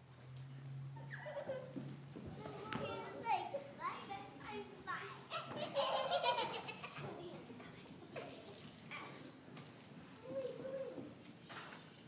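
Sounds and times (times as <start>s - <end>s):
children chattering: 2.3s - 9.2s.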